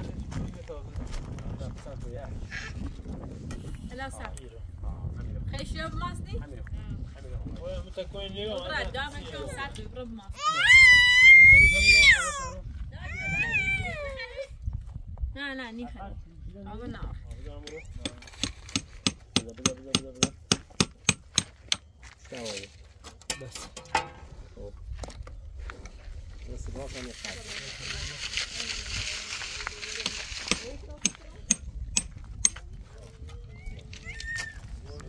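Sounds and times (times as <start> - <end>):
hammer blows on wood: 18.0 - 21.9.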